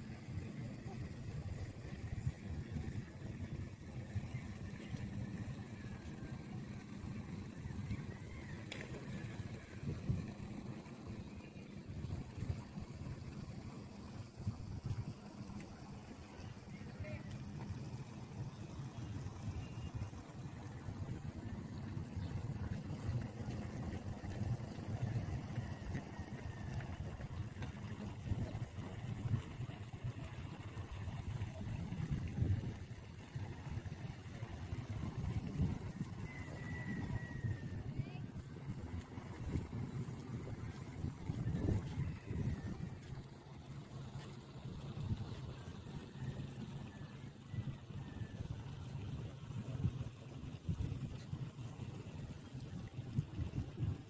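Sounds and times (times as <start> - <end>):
low uneven rumble: 0.0 - 54.0.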